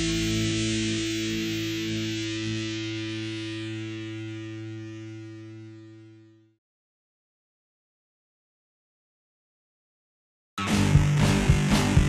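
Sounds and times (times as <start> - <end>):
distorted electric guitar chord: 0.0 - 6.5, 10.6 - 12.0.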